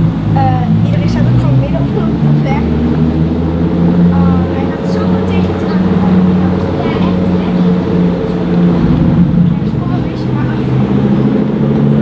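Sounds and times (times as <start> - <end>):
car engine idling at low revs: 0.0 - 12.0.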